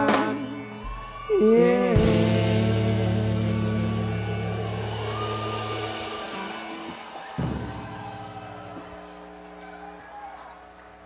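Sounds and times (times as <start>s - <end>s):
rock band chord ringing: 2.1s - 11.0s.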